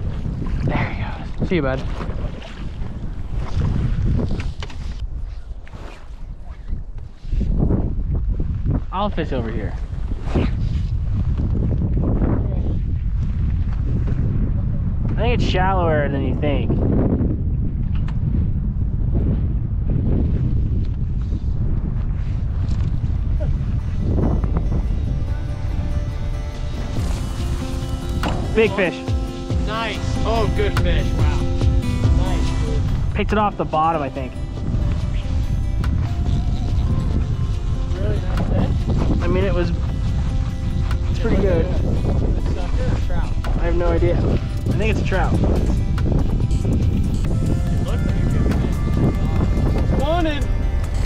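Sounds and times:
wind buffeting microphone: 0:00.0 - 0:51.0
faint background music: 0:23.8 - 0:51.0.

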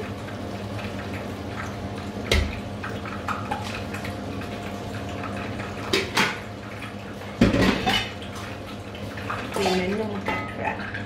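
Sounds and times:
kitchenware clattering: 0:07.4 - 0:08.2, 0:09.4 - 0:11.0.

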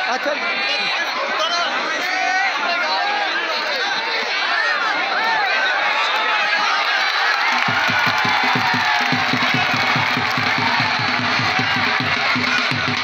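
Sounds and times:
men shouting and cheering: 0:00.0 - 0:13.0
dhol drum beating fast: 0:07.5 - 0:13.0.

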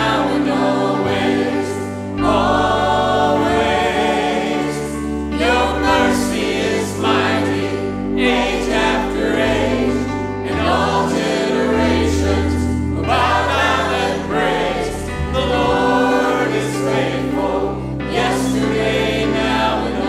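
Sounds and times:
choir singing in harmony: 0:00.0 - 0:20.0
sustained bass notes: 0:00.0 - 0:20.0.

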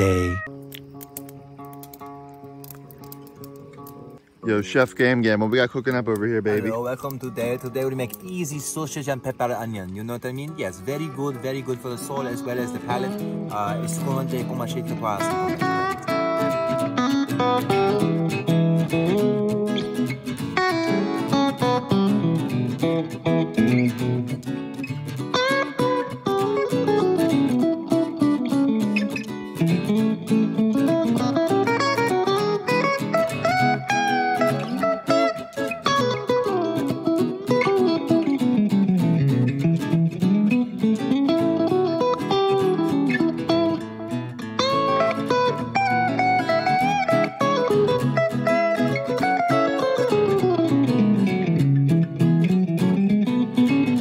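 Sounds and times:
plucked guitar melody: 0:00.0 - 0:54.0.

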